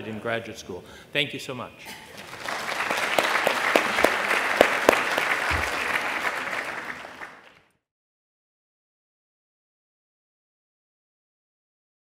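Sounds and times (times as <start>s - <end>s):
audience applauding: 2.1s - 7.8s.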